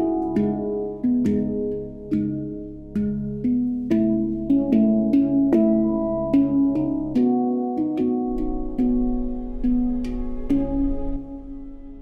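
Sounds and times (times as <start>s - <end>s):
handpan melody: 0.0s - 12.0s.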